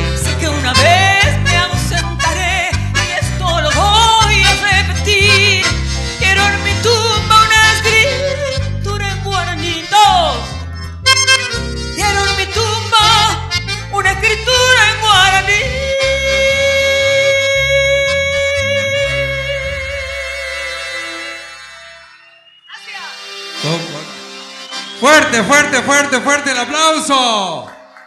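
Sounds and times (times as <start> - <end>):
woman singing with vibrato: 0.0 - 10.5, 12.0 - 21.3
accordion: 0.0 - 27.1
applause: 26.9 - 28.0.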